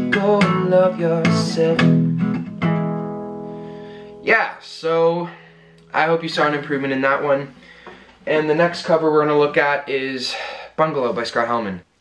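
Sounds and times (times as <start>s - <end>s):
acoustic guitar strumming: 0.0s - 9.0s.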